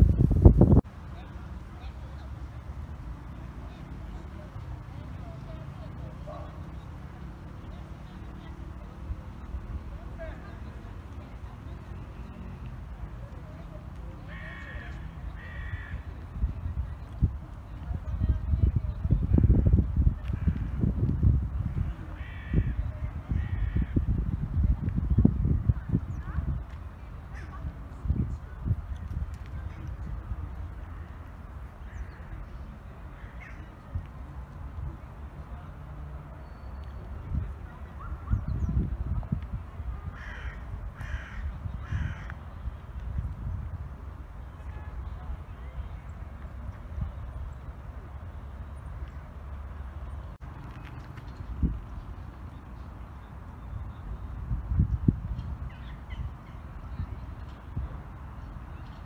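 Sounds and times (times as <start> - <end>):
steady low rumble: 0.0 - 1.7.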